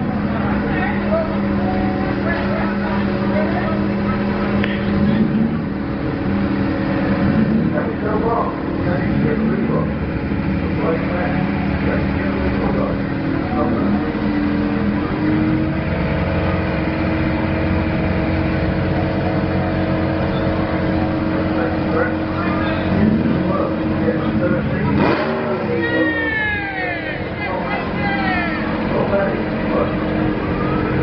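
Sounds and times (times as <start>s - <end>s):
engine running at raised revs: 0.0s - 31.0s.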